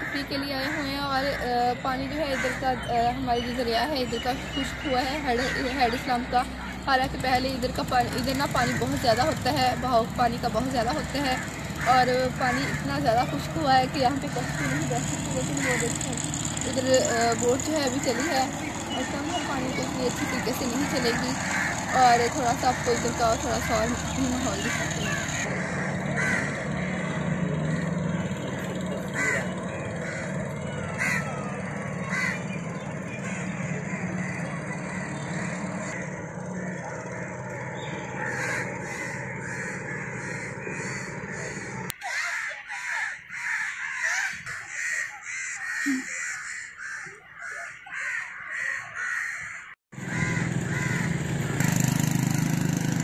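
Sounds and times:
steady background noise: 0:00.0 - 0:42.0
birds calling: 0:00.0 - 0:53.0.

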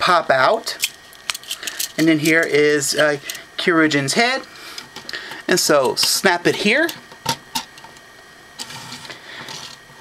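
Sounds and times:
plastic toy parts rustling: 0:00.8 - 0:03.4.

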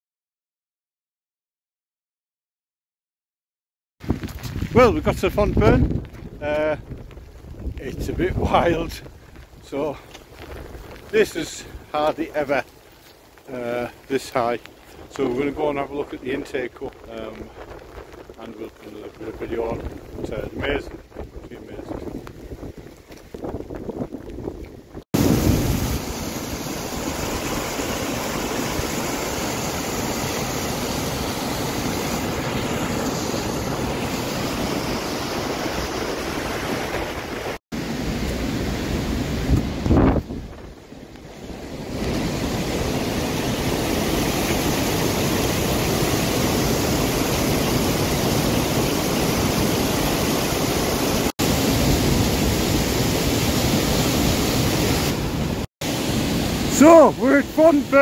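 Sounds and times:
wind buffeting microphone: 0:04.0 - 0:12.3, 0:14.7 - 0:37.6, 0:38.2 - 0:55.6
floodwater rushing through spillway: 0:06.4 - 0:21.1, 0:25.2 - 0:40.0, 0:40.9 - 0:58.0.

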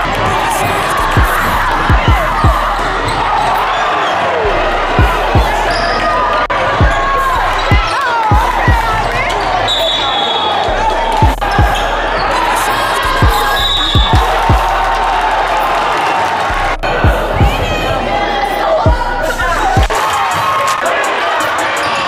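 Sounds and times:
din of voices in a hall: 0:00.0 - 0:22.0.

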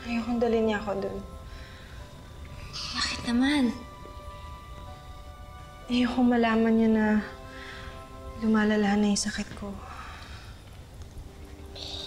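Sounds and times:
soft music of long held tones: 0:00.0 - 0:12.0.

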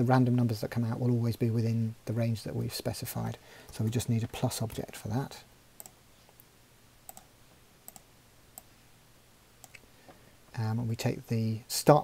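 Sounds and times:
low steady hum: 0:00.0 - 0:12.0
keyboard and mouse clicks: 0:07.1 - 0:07.3, 0:07.9 - 0:08.7.

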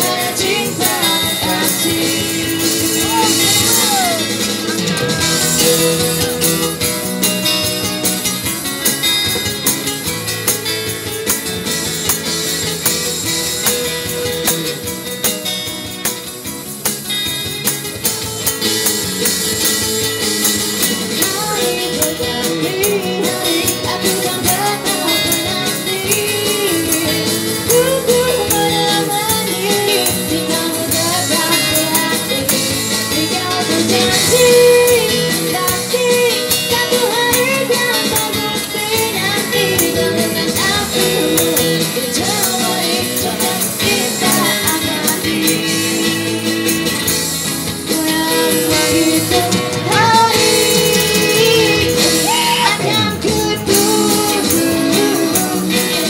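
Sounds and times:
woman singing: 0:00.0 - 0:06.9, 0:21.0 - 0:47.0, 0:47.8 - 0:56.0
acoustic guitars strumming: 0:00.0 - 0:56.0
tambourine shaken: 0:00.0 - 0:56.0.

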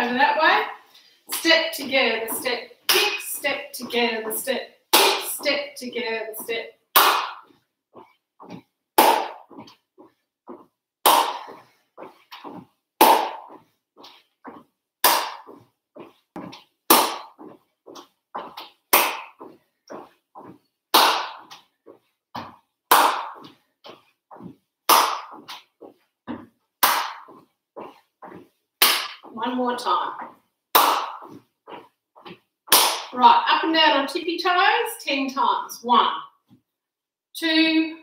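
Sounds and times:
footsteps on wooden floorboards: 0:07.3 - 0:32.6.

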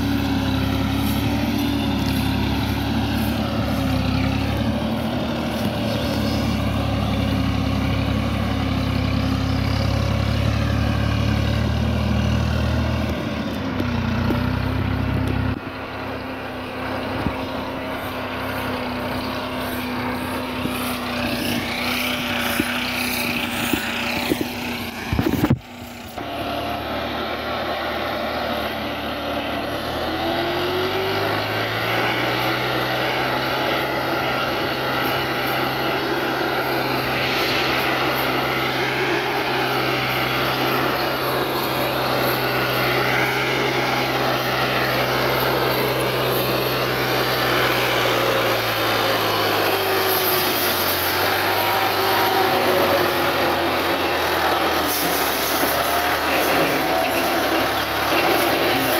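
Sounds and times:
diesel tractor engine running: 0:00.0 - 0:58.9.

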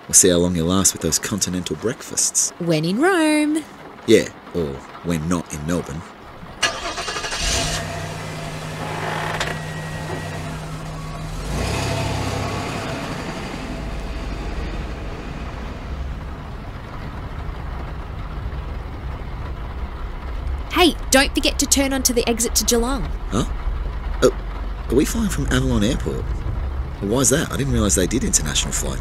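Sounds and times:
car engine running: 0:05.8 - 0:29.0.

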